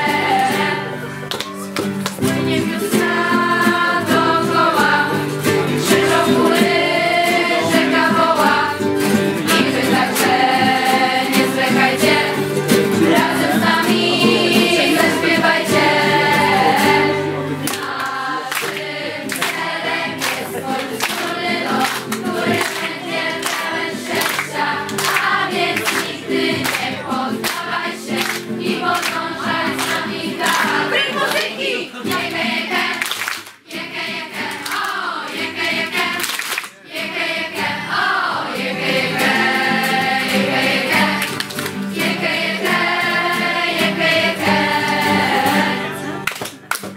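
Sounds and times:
young voices singing together: 0.0 - 1.3, 2.2 - 46.2
strummed acoustic guitars: 0.0 - 46.9.

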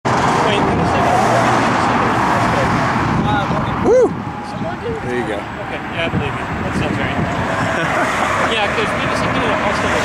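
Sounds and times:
road traffic noise: 0.0 - 10.0
voices talking: 0.2 - 10.0.

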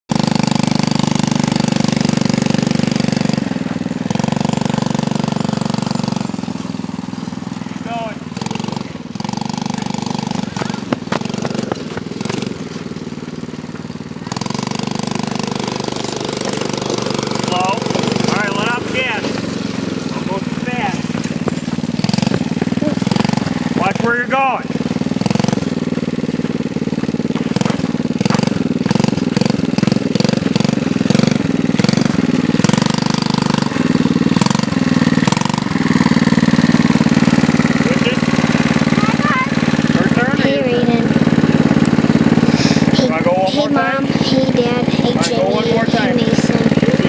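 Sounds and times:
small atv engine running: 0.0 - 47.0.

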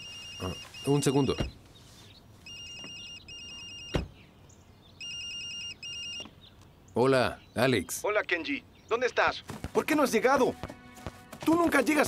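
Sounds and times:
phone ringtone trilling: 0.0 - 1.4, 2.4 - 4.0, 5.0 - 6.3.

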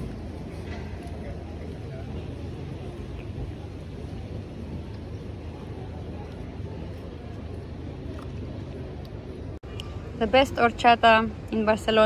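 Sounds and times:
faint voices: 0.0 - 12.0
low street rumble: 0.0 - 12.0.

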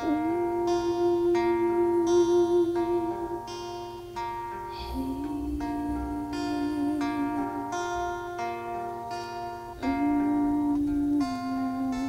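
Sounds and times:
acoustic guitar picking: 0.0 - 12.0
person singing long wavering notes: 0.0 - 12.0.

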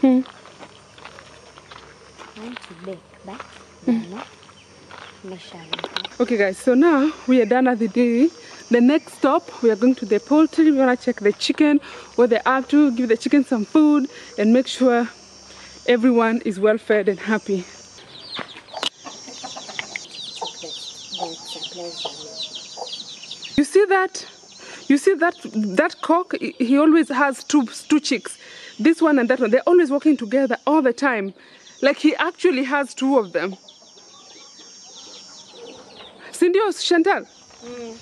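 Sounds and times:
high insect-like hum: 0.0 - 38.0
small birds chirping: 0.0 - 38.0
chicks peeping: 18.0 - 23.6, 33.5 - 36.2
hen clucking: 18.1 - 23.5.

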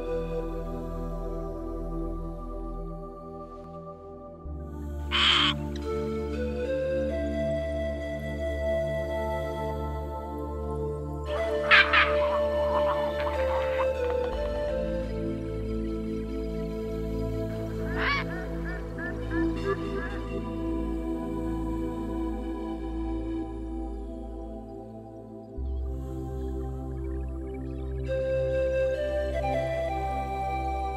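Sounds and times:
soft background music: 0.0 - 30.9
harsh bird call: 5.1 - 5.6, 11.4 - 14.5, 17.8 - 20.4.

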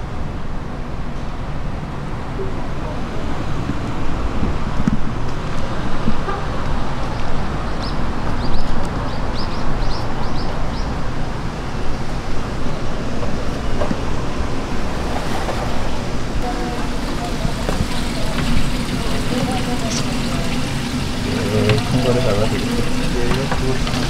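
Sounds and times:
passing traffic: 0.0 - 24.0
wind on microphone: 2.5 - 16.5.

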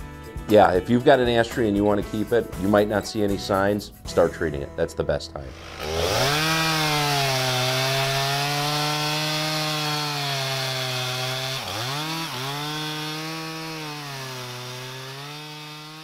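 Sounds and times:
chainsaw engine running: 5.5 - 16.0.

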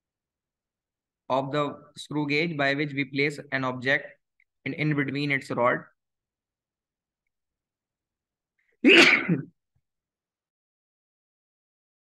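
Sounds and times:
person sneezing: 8.8 - 9.5.

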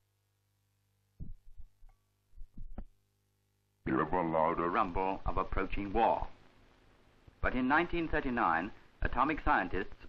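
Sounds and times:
muffled low thumps: 1.2 - 3.0.

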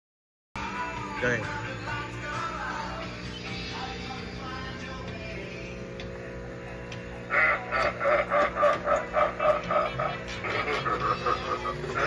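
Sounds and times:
background music: 0.6 - 12.0.

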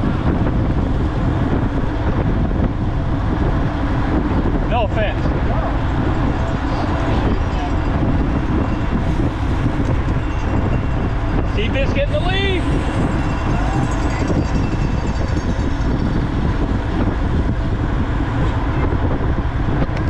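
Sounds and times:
bicycle tyre hum: 0.0 - 20.0
wind rushing: 0.0 - 20.0.

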